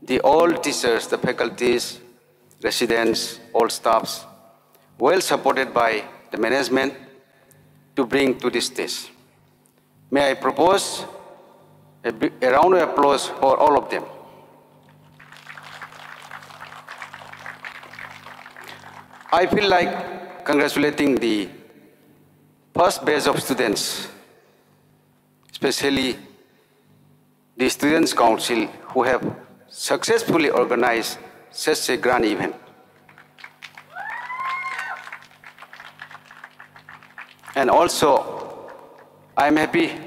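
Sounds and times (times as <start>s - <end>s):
sound system hum: 0.0s - 40.0s
audience applauding: 14.8s - 19.6s, 33.0s - 39.3s
high-pitched cheer: 33.4s - 37.3s.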